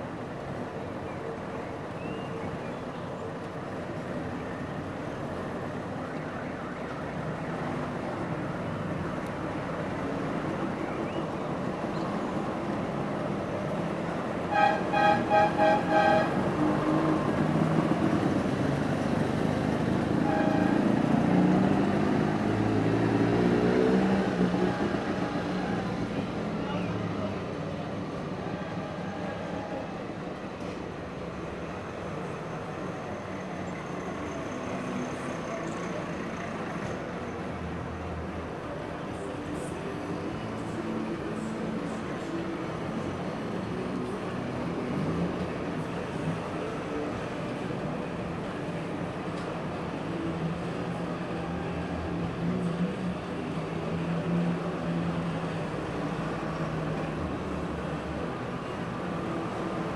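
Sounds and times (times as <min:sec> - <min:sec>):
car horn toots: 0:14.5 - 0:16.4.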